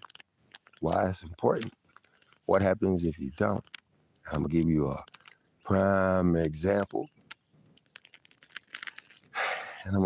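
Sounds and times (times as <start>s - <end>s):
faint clicks: 0.0s - 10.0s.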